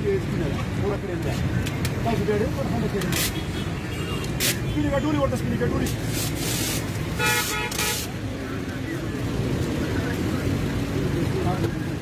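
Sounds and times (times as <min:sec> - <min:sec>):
people talking indistinctly: 0:00.0 - 0:12.0
road traffic rumble: 0:00.0 - 0:12.0.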